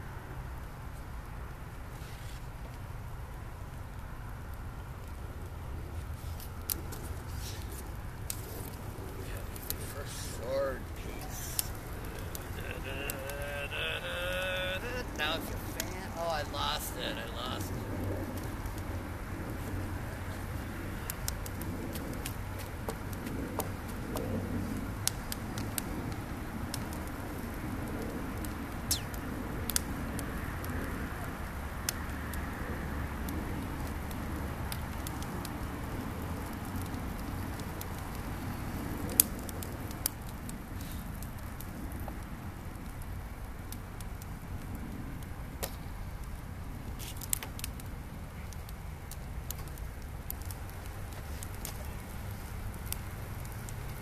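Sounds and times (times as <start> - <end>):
bonfire burning with low rush: 0.0 - 54.0
wood crackling and popping: 0.3 - 54.0.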